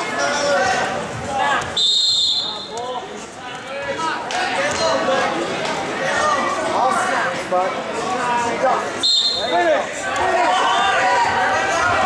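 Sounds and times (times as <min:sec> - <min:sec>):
spectators' voices: 0:00.0 - 0:12.0
shrill whistle blast: 0:01.8 - 0:02.7, 0:09.0 - 0:09.6.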